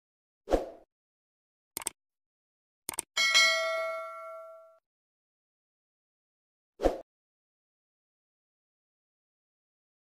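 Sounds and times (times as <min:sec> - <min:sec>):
bell-like notification ding: 0:03.2 - 0:04.8.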